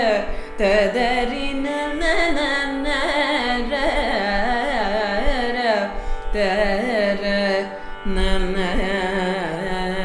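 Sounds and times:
woman singing wordless phrases: 0.0s - 10.0s.

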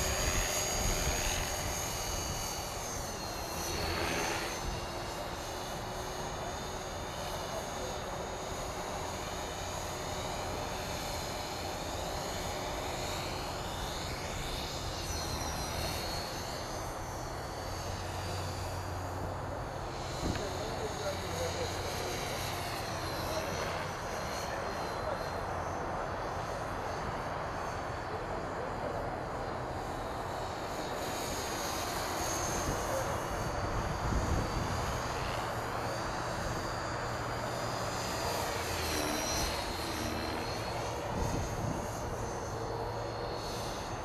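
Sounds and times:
rc helicopter motor whine: 0.0s - 44.0s
steady background noise: 0.0s - 44.0s.

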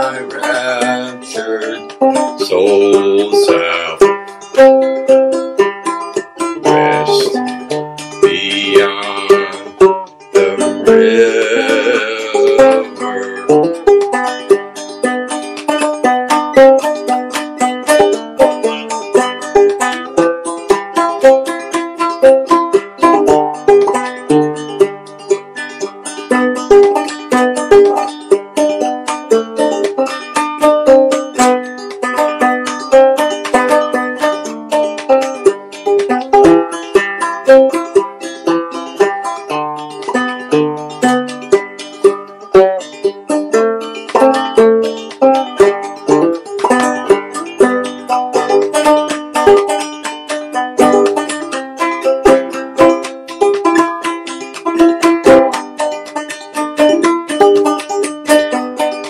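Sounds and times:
banjo plucked instrumental tune: 0.0s - 59.0s.

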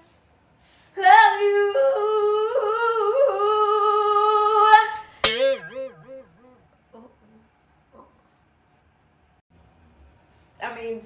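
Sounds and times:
wavering tone sinking in pitch: 5.2s - 6.6s.

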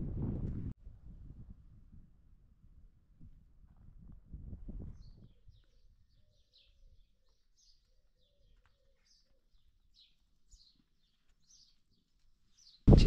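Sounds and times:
small birds chirping: 4.9s - 13.0s.

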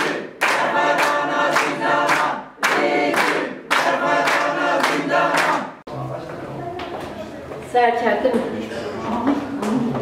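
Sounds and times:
hands clapping: 0.0s - 5.7s
women singing in unison: 0.0s - 5.8s.

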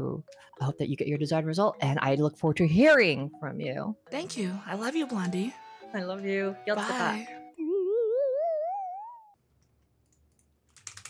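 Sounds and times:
warbling rising tone: 7.6s - 9.3s.

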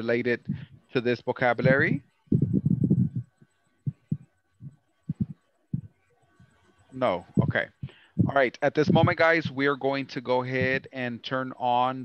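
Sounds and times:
low muffled thumps: 0.4s - 0.7s, 1.6s - 6.0s, 7.4s - 9.6s, 10.5s - 10.9s.

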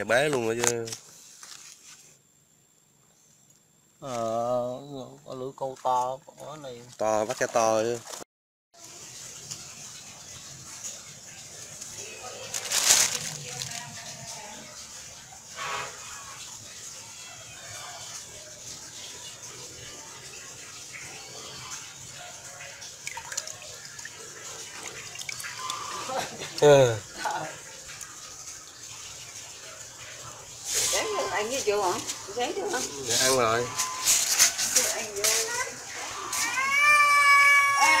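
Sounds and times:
water splashing and dripping: 8.8s - 38.0s
cat meowing: 36.2s - 38.0s.

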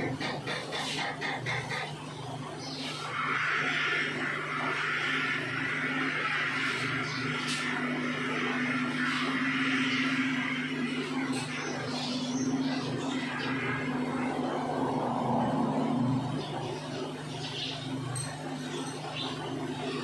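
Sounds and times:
low electrical hum: 0.0s - 20.0s.

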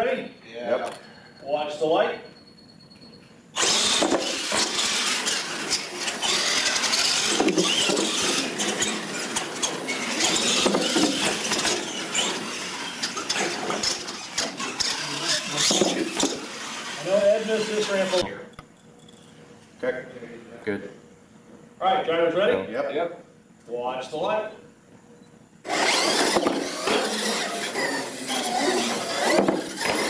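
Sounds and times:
electric toy truck motor whine: 3.6s - 18.3s, 25.6s - 30.0s.

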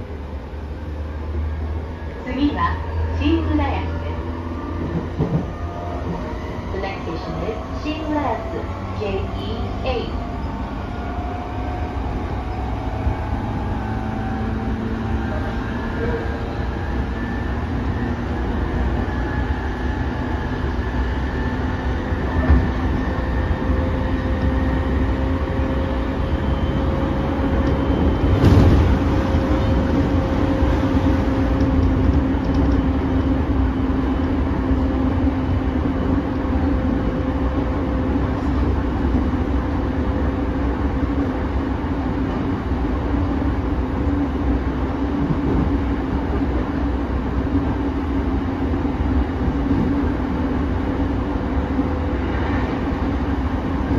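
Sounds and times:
train wheels rumbling on rail: 0.0s - 53.9s.

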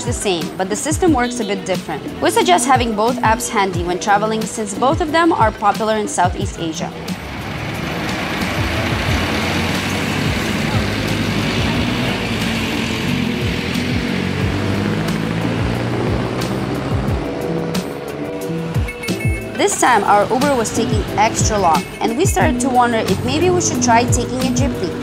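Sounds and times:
background music: 0.0s - 25.0s
traffic passing: 0.0s - 25.0s.

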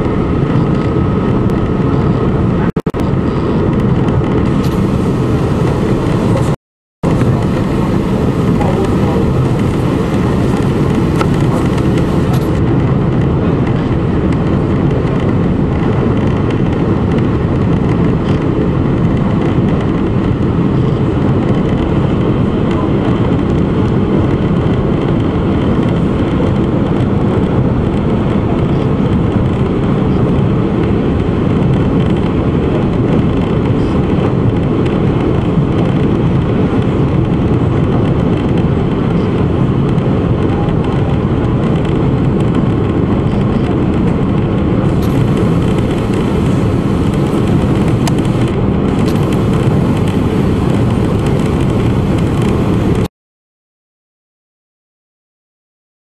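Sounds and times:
ferry engines rumbling: 0.0s - 16.8s, 43.3s - 53.1s
wind: 0.0s - 53.1s
churning wake rushing: 1.1s - 12.9s, 44.8s - 53.1s.

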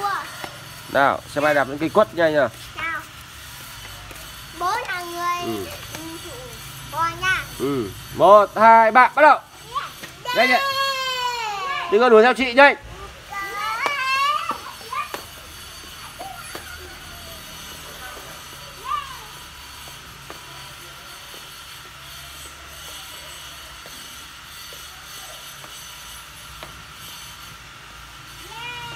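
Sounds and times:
young children shouting: 9.9s - 12.2s, 13.0s - 15.3s, 15.9s - 19.6s, 28.4s - 28.9s.

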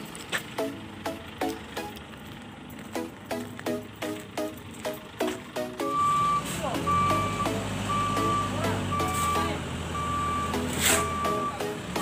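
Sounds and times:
background music with steady beat: 0.0s - 12.0s
low engine rumble: 0.0s - 12.0s
reversing alarm beeping: 5.8s - 11.8s.

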